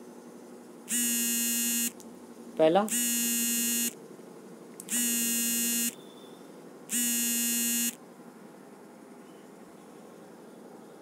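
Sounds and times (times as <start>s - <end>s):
smartphone buzzing: 0.9s - 2.0s, 2.9s - 4.0s, 4.8s - 6.0s, 6.9s - 8.0s.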